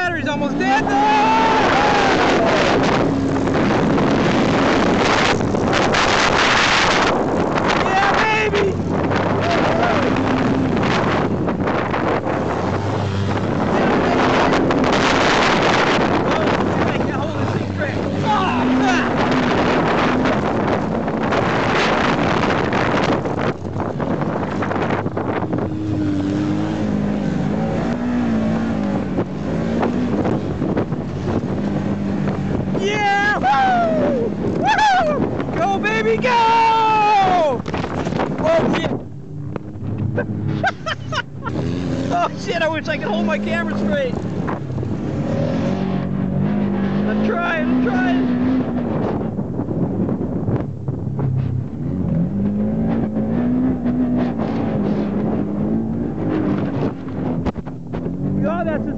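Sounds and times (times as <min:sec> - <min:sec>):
vehicle engine running hard: 0:00.0 - 0:58.9
wind on microphone: 0:00.0 - 0:58.9.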